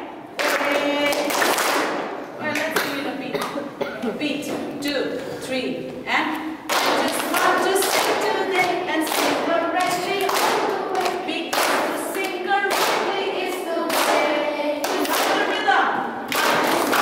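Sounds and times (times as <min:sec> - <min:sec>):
children clapping: 0:00.4 - 0:02.8, 0:06.7 - 0:15.7, 0:16.3 - 0:17.0
children chanting: 0:06.8 - 0:17.0.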